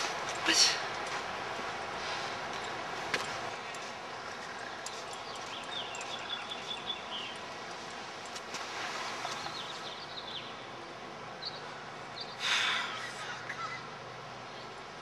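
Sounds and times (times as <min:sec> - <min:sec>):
outdoor background noise: 0:00.0 - 0:15.0
high bird chirps: 0:04.5 - 0:07.5.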